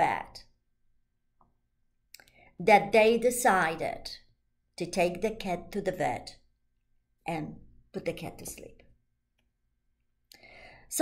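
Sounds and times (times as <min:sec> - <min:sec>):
intake of breath: 0:10.3 - 0:10.9.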